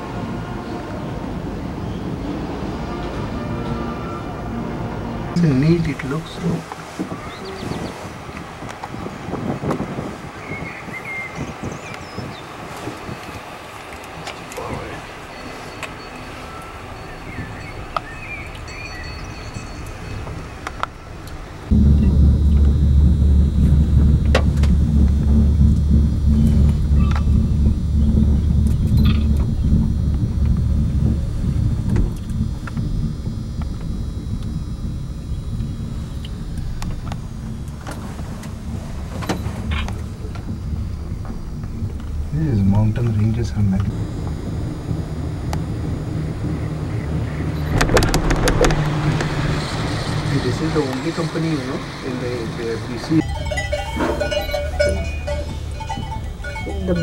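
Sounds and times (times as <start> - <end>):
cable car cabin hum: 0.0 - 57.0.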